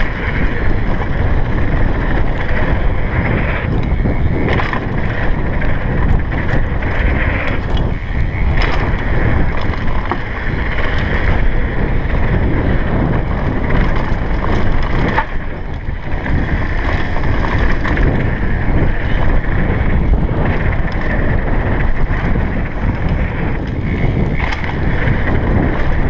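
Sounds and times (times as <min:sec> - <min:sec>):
bike knocks and rattles: 0:00.0 - 0:26.0
tyres rumbling on dirt trail: 0:00.0 - 0:26.0
wind buffeting microphone: 0:00.0 - 0:26.0.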